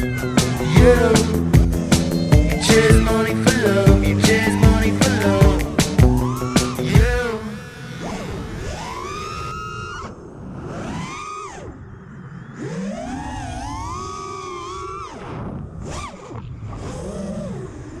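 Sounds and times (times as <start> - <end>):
quadcopter motors whining: 4.3 - 9.9.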